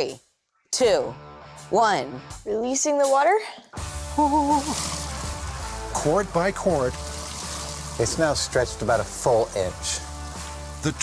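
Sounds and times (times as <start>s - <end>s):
background music: 0.0s - 11.0s
water running into plastic bucket: 3.8s - 11.0s.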